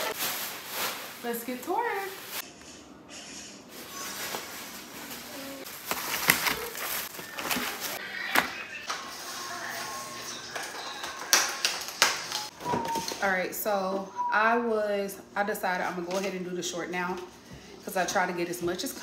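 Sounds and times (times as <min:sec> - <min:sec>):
plastic bags rustling: 0:00.0 - 0:02.4, 0:03.7 - 0:08.0.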